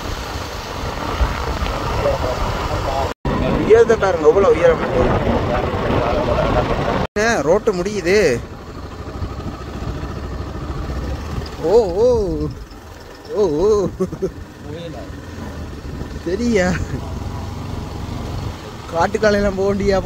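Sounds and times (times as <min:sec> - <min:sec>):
motorcycle engine running: 0:04.2 - 0:20.0.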